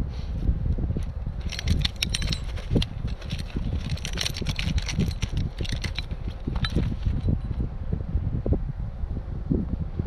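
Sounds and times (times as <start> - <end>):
steady low rumble: 0.0 - 10.0
metal chain clinking and rattling: 1.0 - 7.6.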